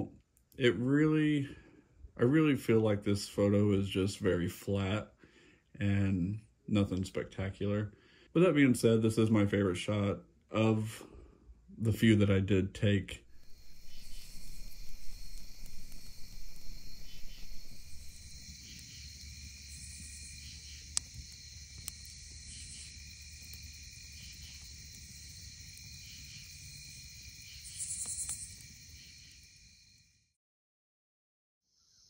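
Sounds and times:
campfire pops: 13.3 - 29.6
crickets chirping: 13.3 - 30.3.

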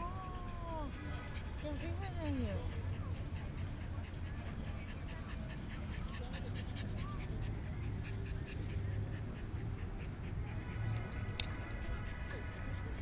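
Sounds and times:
dog panting: 0.2 - 13.0.

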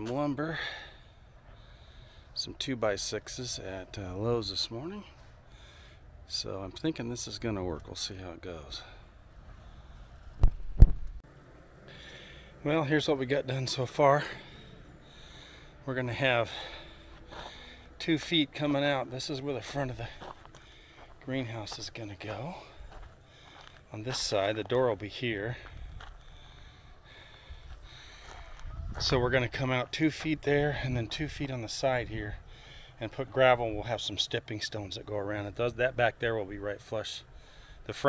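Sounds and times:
steady low rumble: 0.0 - 38.0.

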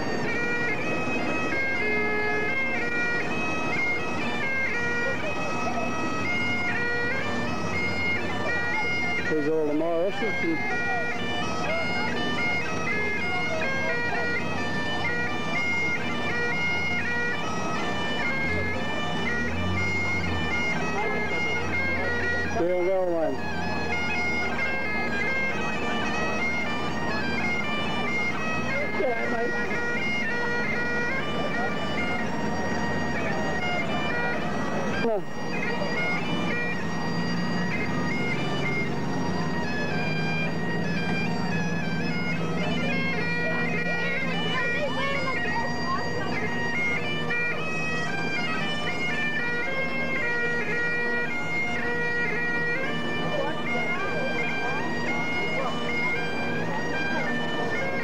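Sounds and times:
bagpipes playing a tune: 0.0 - 58.0.

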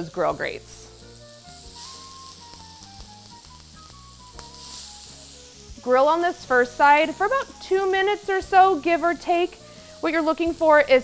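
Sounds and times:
shrimp sizzling on grill pan: 0.0 - 11.0.

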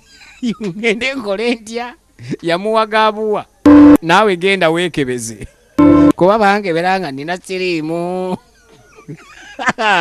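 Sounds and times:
mobile phone beep: 3.7 - 4.0, 5.8 - 6.2.

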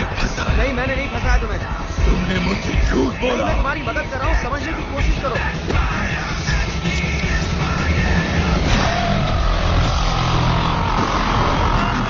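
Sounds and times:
deep rumble: 4.5 - 12.0.

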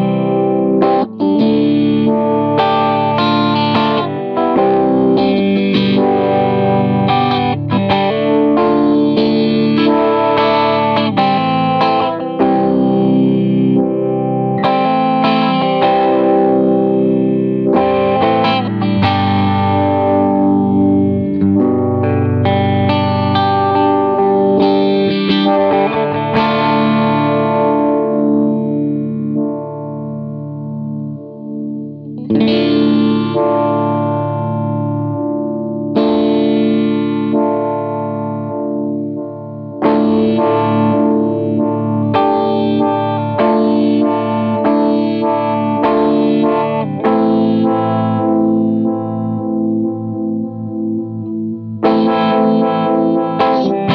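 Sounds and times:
electric guitar chords with vibe effect: 0.0 - 53.9.

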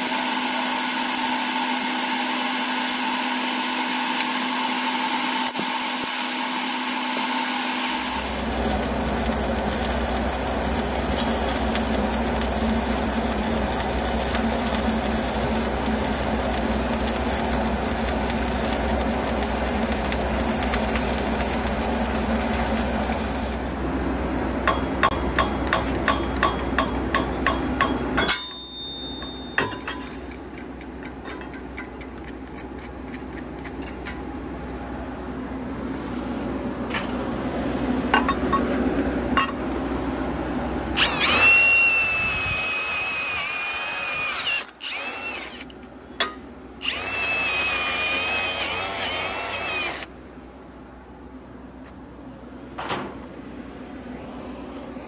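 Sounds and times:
welding machine hum: 0.0 - 27.7, 40.8 - 45.9, 46.8 - 50.4
welding arc crackle and hiss: 5.4 - 23.9, 41.0 - 45.7, 46.8 - 50.1.

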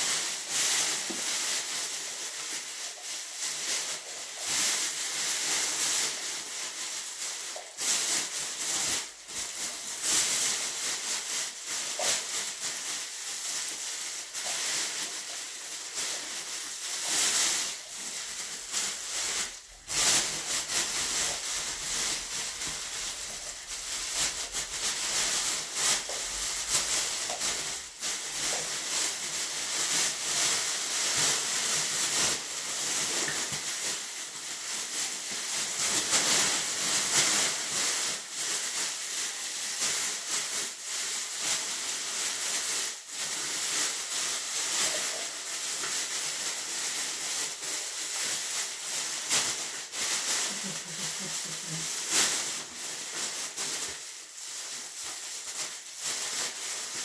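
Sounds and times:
plastic bag crinkling: 0.0 - 57.0.

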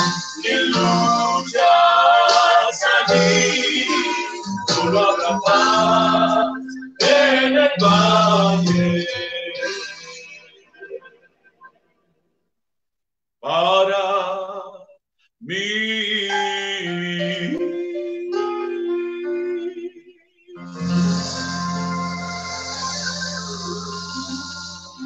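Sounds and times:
man's voice: 0.0 - 10.1, 15.4 - 20.0
group singing a hymn: 0.0 - 10.5.

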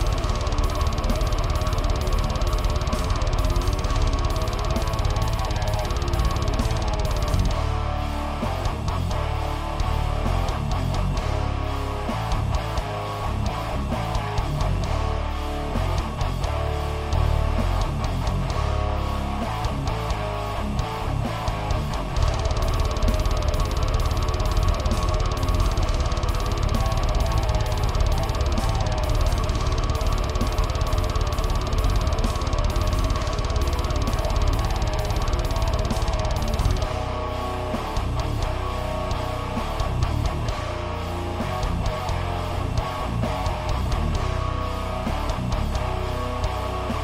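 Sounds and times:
rapid even beat: 0.0 - 7.8, 21.9 - 40.5
distorted electric guitar riff: 0.0 - 47.0
heavy metal band with drums: 0.0 - 47.0.

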